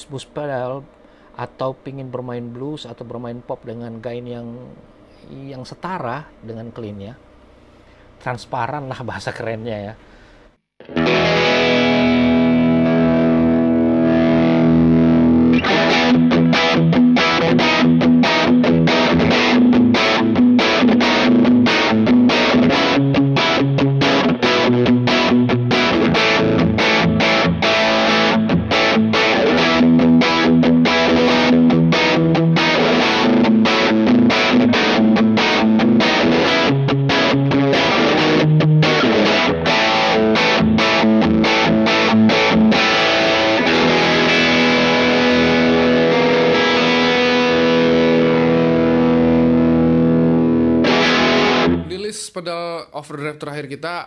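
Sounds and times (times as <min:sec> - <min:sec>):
overdriven electric guitar chords: 0:10.8 - 0:52.0.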